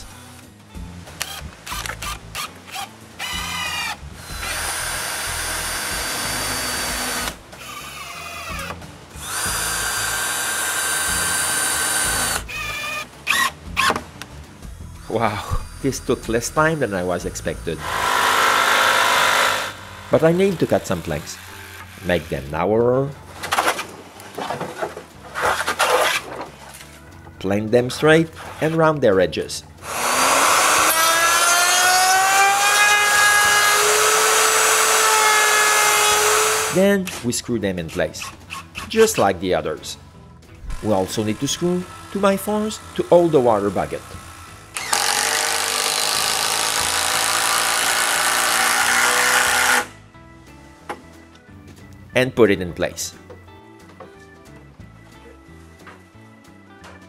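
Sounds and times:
cordless drill driving screw: 1.2 - 14.0, 17.8 - 22.0, 29.8 - 36.8, 40.7 - 49.9.

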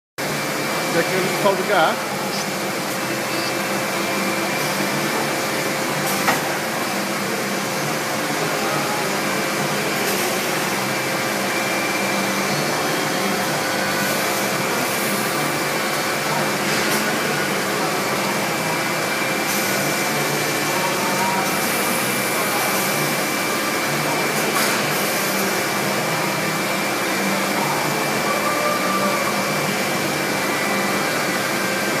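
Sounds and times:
machine whirring hum: 0.2 - 32.0.

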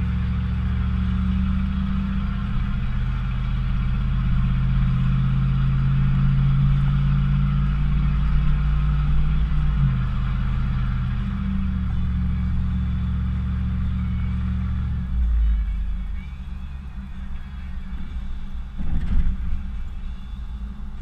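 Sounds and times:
truck engine drone from cab: 0.0 - 21.0.

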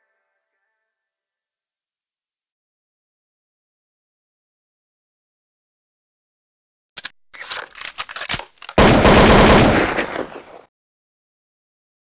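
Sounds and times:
scattered clicks: 7.0 - 8.8.

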